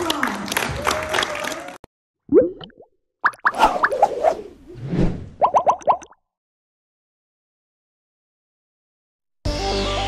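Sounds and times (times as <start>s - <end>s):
bubbly pop: 5.4s - 6.2s.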